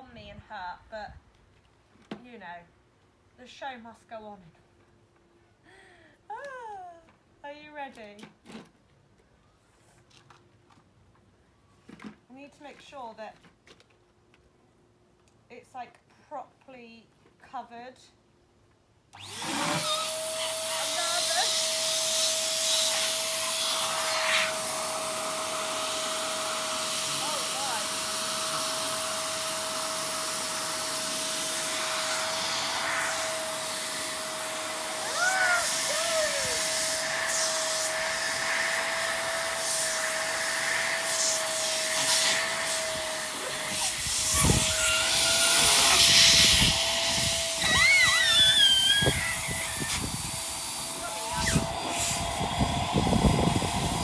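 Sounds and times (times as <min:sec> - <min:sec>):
electric balloon pump whining: 0:19.1 - 0:54.0
hiss of air: 0:45.8 - 0:54.0.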